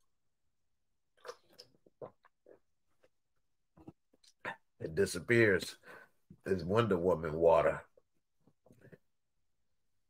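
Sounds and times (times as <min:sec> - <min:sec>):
man gulping water: 0:01.0 - 0:04.8.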